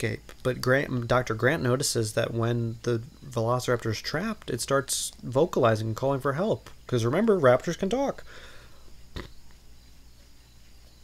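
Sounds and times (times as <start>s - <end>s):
low electrical hum: 0.0s - 11.0s
microphone hiss: 0.0s - 11.0s.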